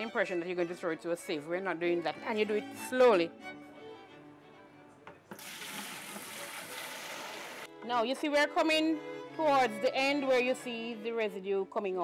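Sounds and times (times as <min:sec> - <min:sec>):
faint music with strings: 0:00.0 - 0:12.0
liquid pouring into bucket: 0:05.3 - 0:07.7.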